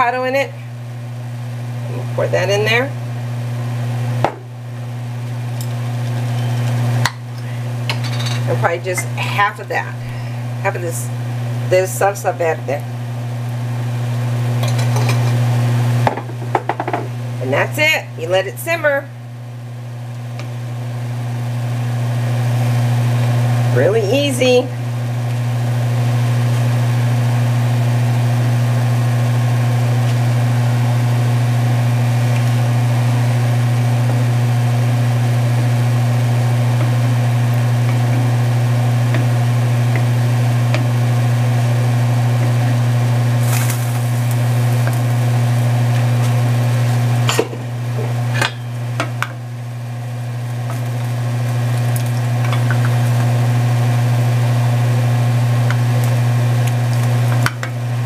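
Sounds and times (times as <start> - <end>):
low electrical hum: 0.0 - 58.0
wooden spoon knocking on pan: 16.1 - 17.1.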